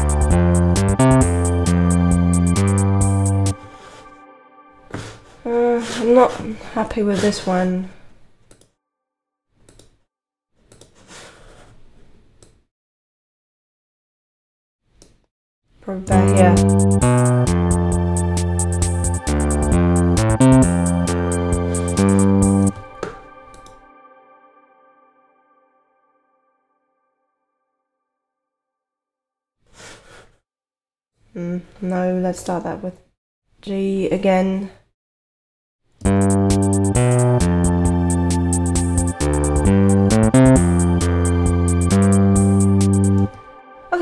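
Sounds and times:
ticking beat: 0.0 - 3.6, 16.1 - 22.8, 36.0 - 43.4
synth bass line: 0.0 - 4.7, 16.1 - 25.4, 36.0 - 43.9
woman's voice: 5.4 - 8.0, 15.8 - 16.8, 31.4 - 33.0, 33.6 - 34.8.

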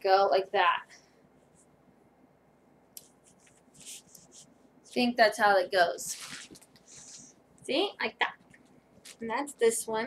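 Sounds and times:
dress fabric rustling: 3.1 - 7.4.

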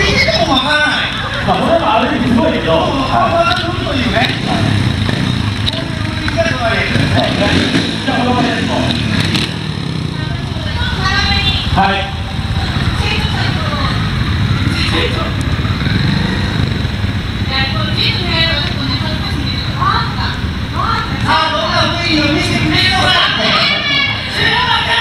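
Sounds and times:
motorcycle engines idling: 0.0 - 25.0
voices: 0.0 - 25.0.

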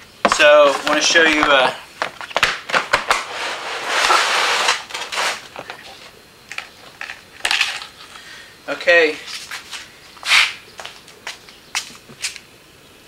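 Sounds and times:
scraping rustle: 0.3 - 8.2, 9.2 - 11.2.

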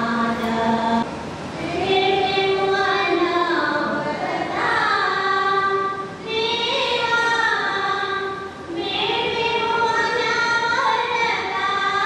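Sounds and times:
women singing together: 0.0 - 12.0.

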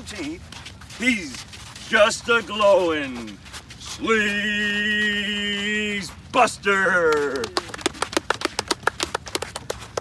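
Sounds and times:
people clapping: 6.8 - 10.0.

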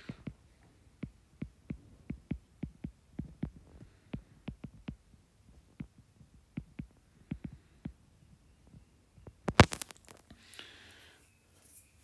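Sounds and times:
stylus tapping on glass screen: 1.0 - 5.0, 5.7 - 8.0.

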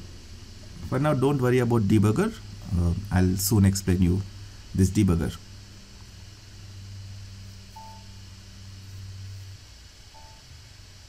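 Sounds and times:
low steady hum: 0.0 - 11.0
short faint beeps: 7.7 - 8.2, 10.1 - 10.5.

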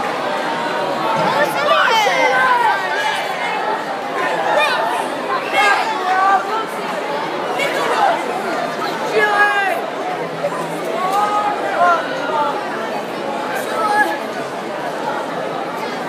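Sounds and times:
audience chatter in a large hall: 0.0 - 16.0.

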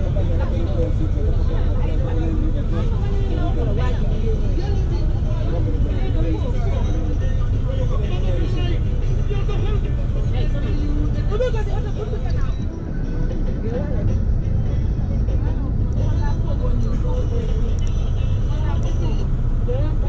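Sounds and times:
vehicle engine and road rumble: 0.0 - 20.0
voices talking: 0.0 - 20.0.

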